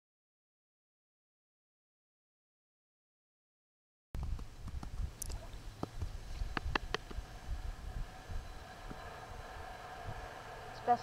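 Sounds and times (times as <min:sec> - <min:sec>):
sharp clicks: 0:04.2 - 0:07.2
faint steady hum: 0:04.2 - 0:11.0
uneven low rumble: 0:04.2 - 0:11.0.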